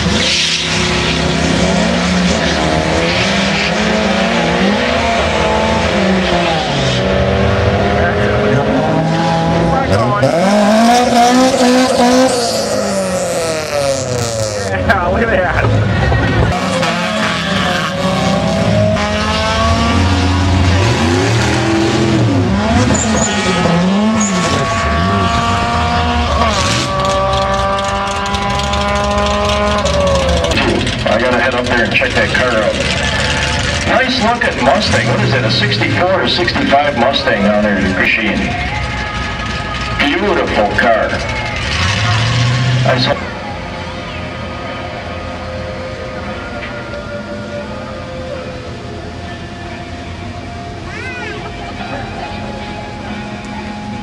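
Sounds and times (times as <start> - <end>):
drag car engine accelerating: 0.0 - 54.0
other race car engines: 0.0 - 54.0
voices: 6.4 - 12.5, 14.6 - 19.0, 19.7 - 54.0.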